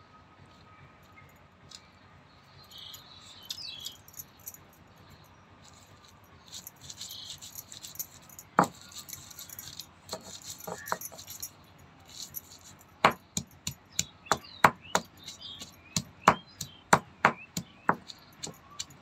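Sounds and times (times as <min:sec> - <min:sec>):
grain rattling in stone mortar: 0:05.6 - 0:19.0
stone pestle crunching and scraping: 0:08.5 - 0:11.4, 0:12.3 - 0:19.0
stone knocks: 0:13.0 - 0:18.1.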